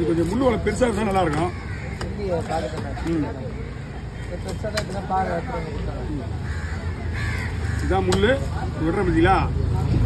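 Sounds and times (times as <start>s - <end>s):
low rumble of traffic: 0.0s - 10.0s
crow cawing: 0.8s - 8.5s.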